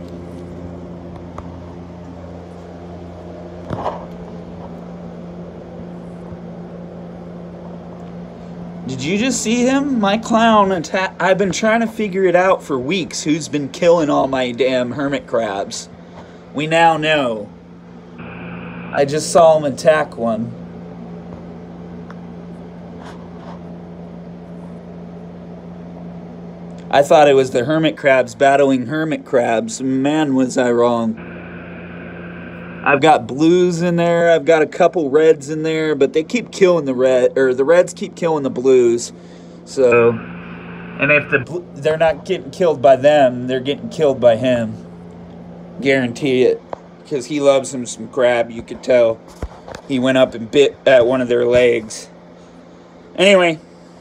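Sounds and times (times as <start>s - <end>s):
aquarium pumps humming: 0.0s - 49.2s.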